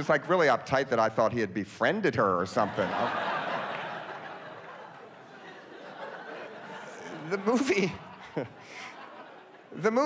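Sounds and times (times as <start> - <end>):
audience laughing: 2.5 - 10.0.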